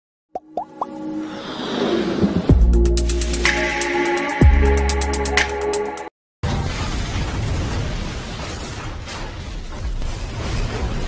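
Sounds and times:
music: 0.4s - 6.1s.

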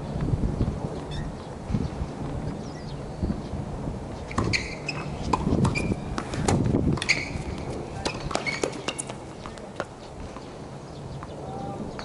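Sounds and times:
shoes squeaking on hard court: 4.2s - 10.5s.

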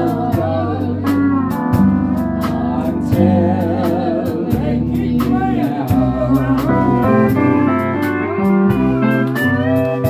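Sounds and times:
acoustic guitar: 0.0s - 10.0s
steady beat: 0.0s - 10.0s
pedal steel guitar sliding notes: 6.2s - 10.0s.

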